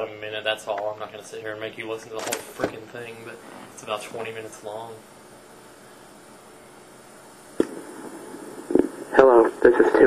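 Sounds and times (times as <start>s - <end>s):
recorded voice: 0.0s - 5.1s, 8.7s - 10.0s
tape hiss: 0.0s - 10.0s.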